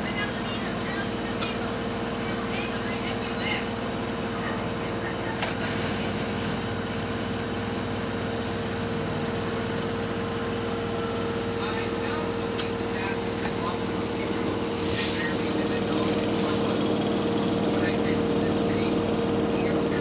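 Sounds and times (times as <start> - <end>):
motor hum and whine: 0.0 - 20.0
washing machine drum spinning: 0.0 - 20.0.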